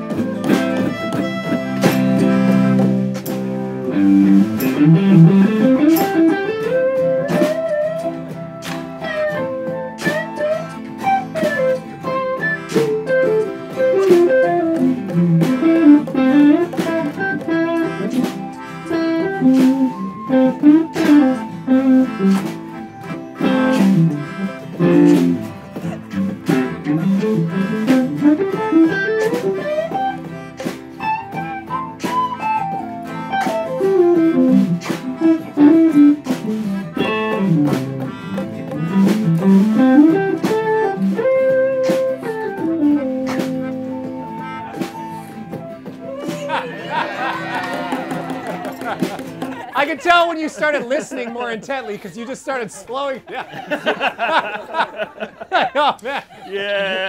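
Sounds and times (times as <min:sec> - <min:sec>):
lead guitar melodic runs: 0:00.0 - 0:51.6
guitars jamming: 0:00.0 - 0:57.0.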